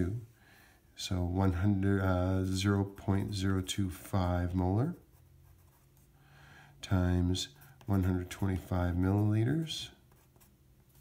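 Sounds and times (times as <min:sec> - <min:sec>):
faint low hum: 0:00.0 - 0:11.0
pencil scratching on paper: 0:04.4 - 0:06.2, 0:07.4 - 0:11.0.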